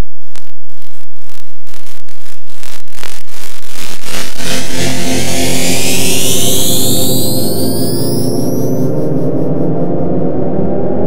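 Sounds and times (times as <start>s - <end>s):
synthesizer with upward gliding tones: 4.1s - 11.0s.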